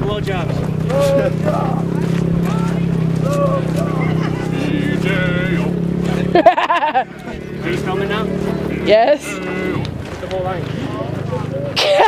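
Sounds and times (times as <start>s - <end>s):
men shouting: 0.6s - 12.0s
burst of laughter: 6.3s - 7.1s, 11.8s - 12.0s.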